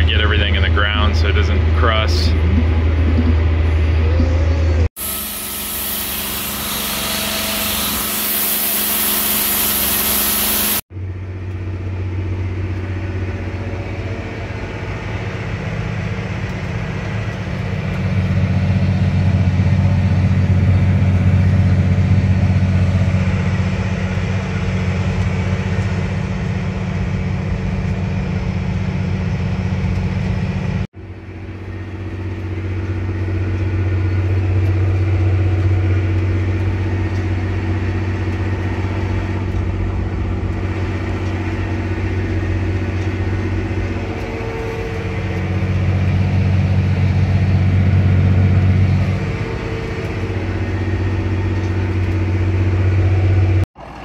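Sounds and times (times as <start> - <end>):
tractor diesel engine droning: 0.0 - 54.0.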